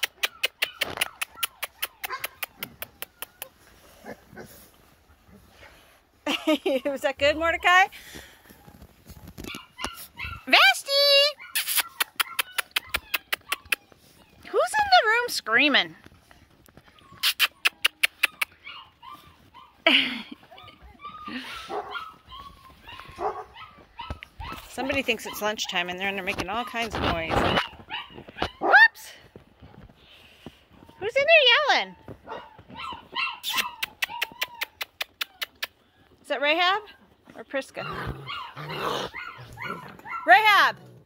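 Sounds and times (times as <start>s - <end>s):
dogs whining: 9.4s - 10.6s, 11.3s - 15.1s, 16.9s - 25.6s, 31.7s - 36.2s, 37.8s - 40.7s.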